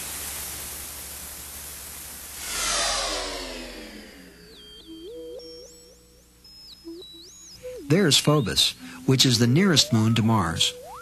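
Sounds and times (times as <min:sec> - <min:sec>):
synthesized whoosh: 0:02.3 - 0:05.4
tones gliding down in pitch: 0:02.4 - 0:11.0
warbling electronic bleeps: 0:02.4 - 0:11.0.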